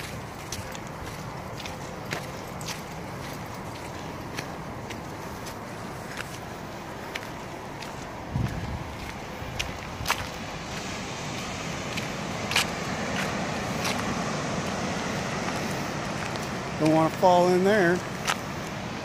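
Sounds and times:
footsteps on gravel trail: 0:00.0 - 0:19.0.

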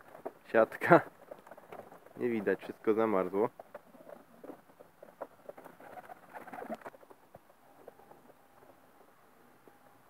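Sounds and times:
pigeon cooing: 0:03.8 - 0:07.0.

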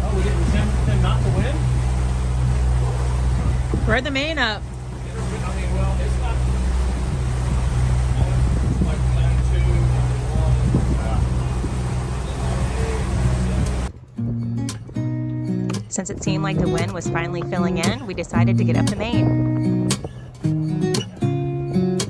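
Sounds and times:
sea noise: 0:00.0 - 0:14.0, 0:15.8 - 0:21.8
boat diesel engine droning: 0:00.0 - 0:22.0
wind: 0:00.0 - 0:22.0
acoustic guitar music: 0:13.3 - 0:22.0.

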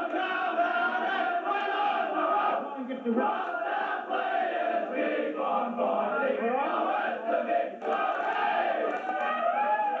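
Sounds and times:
team chanting and singing: 0:00.0 - 0:09.0.

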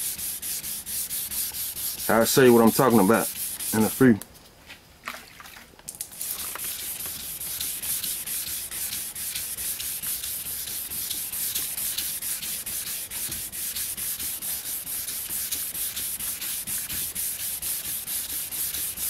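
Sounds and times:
wet sandpaper scrubbing: 0:00.0 - 0:04.2, 0:06.2 - 0:19.0.

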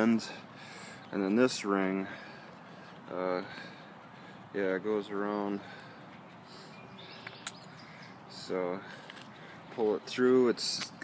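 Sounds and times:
faint bird chirps: 0:06.3 - 0:08.3.

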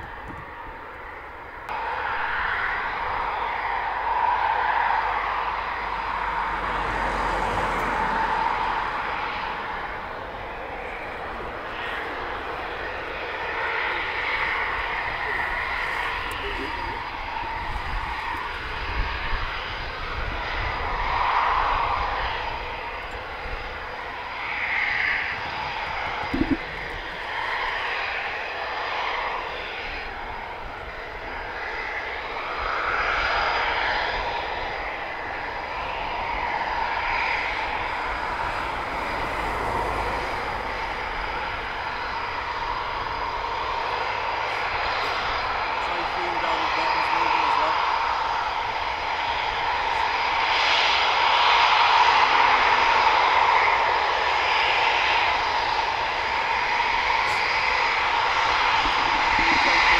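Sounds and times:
jet engines rushing: 0:00.0 - 0:59.9.

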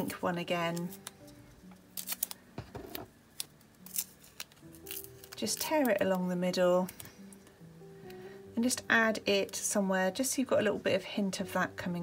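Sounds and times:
quiet background music: 0:00.0 - 0:12.0
tape peeling and tearing: 0:00.7 - 0:06.0.

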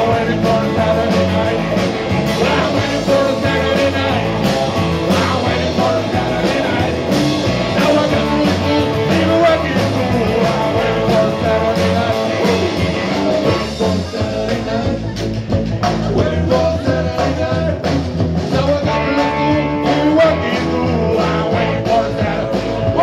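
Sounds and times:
drum kit beat: 0:00.0 - 0:23.0
electric bass: 0:00.0 - 0:23.0
electric guitars: 0:00.0 - 0:23.0.

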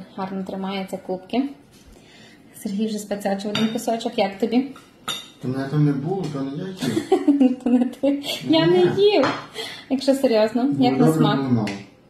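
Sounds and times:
cutlery clinking on a plate: 0:03.5 - 0:03.9, 0:04.7 - 0:05.4
person speaking: 0:08.3 - 0:09.4, 0:10.6 - 0:11.8.

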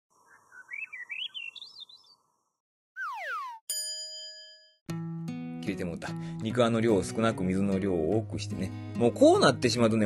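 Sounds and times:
falling pitch glide: 0:03.0 - 0:03.6
warbling chirp rising in pitch: 0:03.0 - 0:03.6
bell-like ding: 0:03.7 - 0:04.8.

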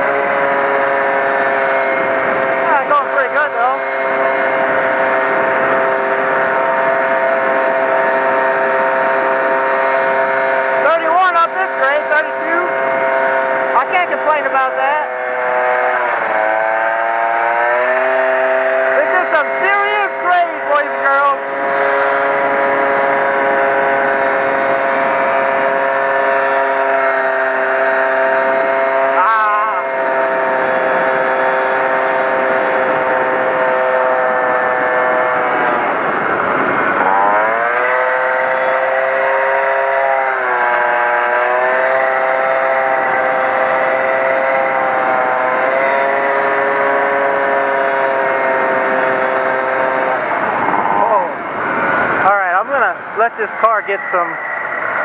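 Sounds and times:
moped engine running: 0:00.0 - 0:55.0.

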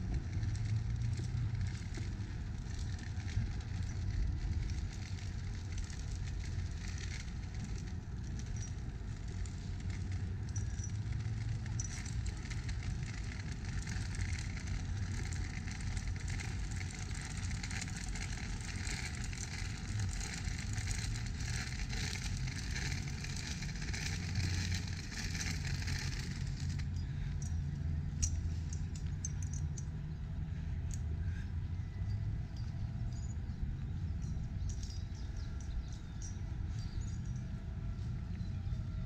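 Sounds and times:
low rumble of road traffic: 0:00.0 - 0:39.0.

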